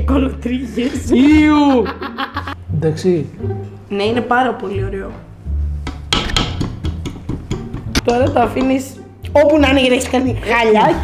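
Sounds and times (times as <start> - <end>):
utensil knocking on metal bowl: 5.8 - 9.0.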